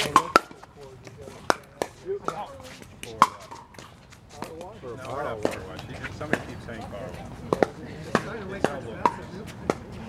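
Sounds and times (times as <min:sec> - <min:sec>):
paddles hitting plastic ball: 0:00.0 - 0:00.7.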